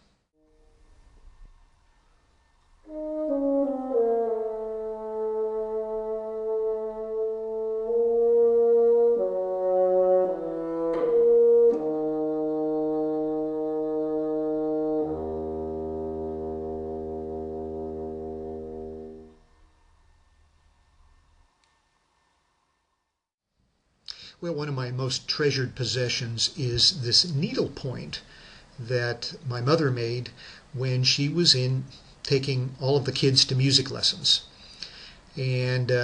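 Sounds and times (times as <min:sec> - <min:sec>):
solo bassoon playing: 0:02.8 - 0:19.5.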